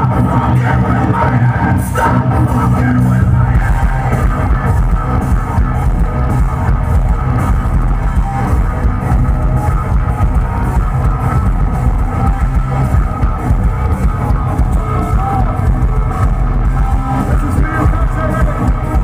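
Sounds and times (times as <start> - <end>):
metal band playing live: 0.0 - 19.0.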